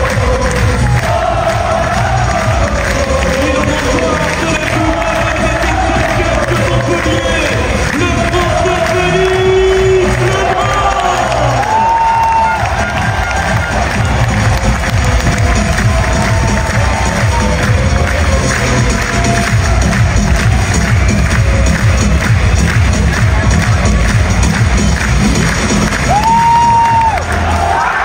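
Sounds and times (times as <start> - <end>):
crowd cheering and clapping: 0.0 - 28.0
loud music: 0.0 - 28.0
shouts and whoops: 10.2 - 14.0, 26.0 - 28.0.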